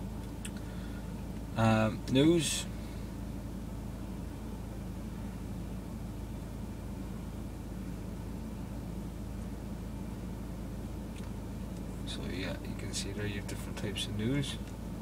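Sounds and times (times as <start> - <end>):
low cabin hum: 0.0 - 15.0.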